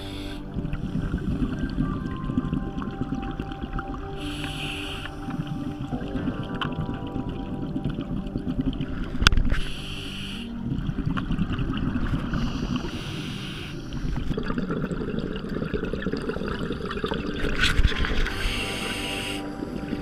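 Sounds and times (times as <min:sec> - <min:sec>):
bubbling exhalation: 0:00.0 - 0:20.0
underwater low rumble: 0:00.0 - 0:20.0.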